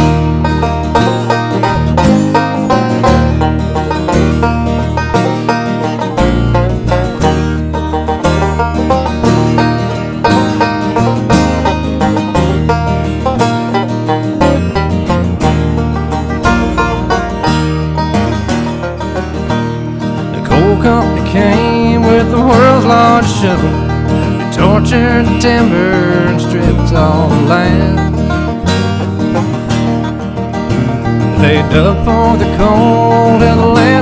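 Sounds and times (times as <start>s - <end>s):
banjo picking fast: 0.0s - 34.0s
low bass line: 0.0s - 34.0s.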